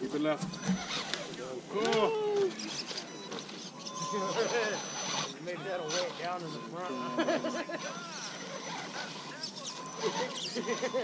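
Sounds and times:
background murmur: 0.0 - 11.0
drawn-out vocal cry: 0.6 - 11.0.

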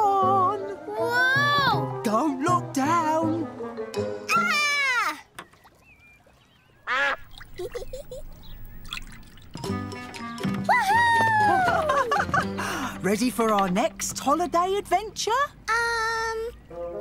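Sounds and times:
cartoon music: 2.8 - 4.9.

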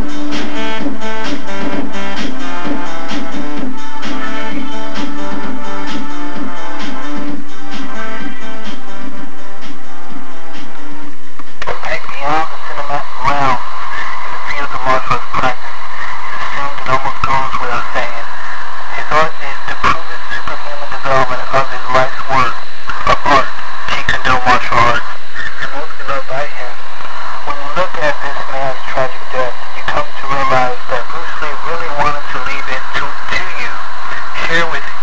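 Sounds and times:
heavily distorted voice: 0.0 - 9.1, 11.4 - 35.0
person speaking: 11.5 - 35.0.

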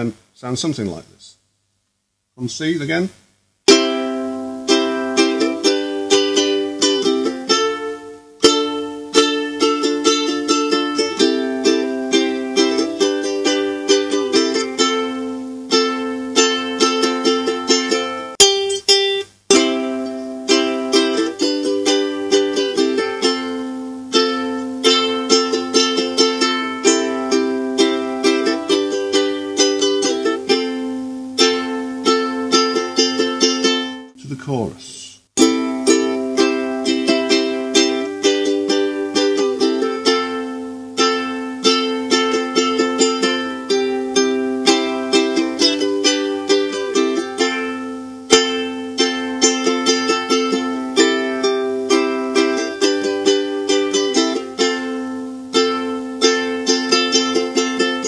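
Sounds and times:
ukulele strumming: 3.7 - 34.2, 35.4 - 58.0.

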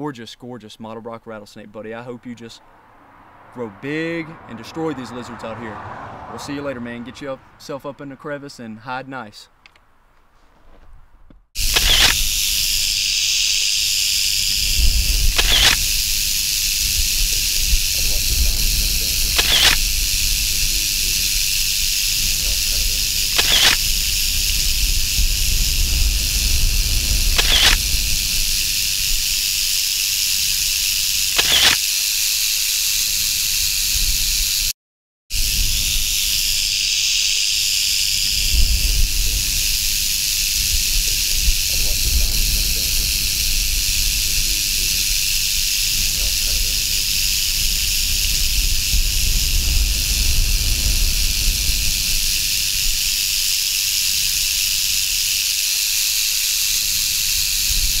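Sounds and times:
rattlesnake rattling: 11.5 - 34.7, 35.3 - 58.0.

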